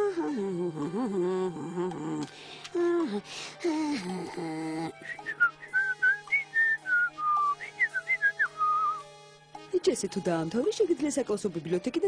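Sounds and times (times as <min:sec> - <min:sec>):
person whistling a tune: 0:05.0 - 0:09.1.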